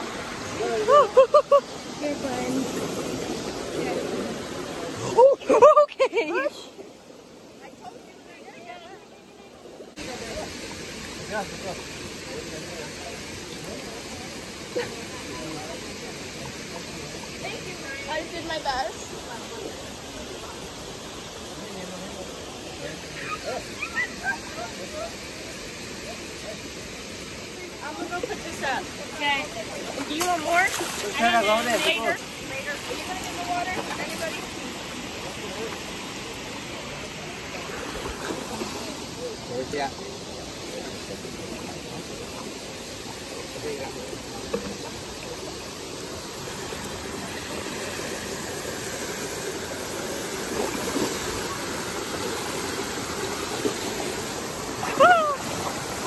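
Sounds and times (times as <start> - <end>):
river rushing over rocks: 0.0 - 5.6, 6.2 - 56.0.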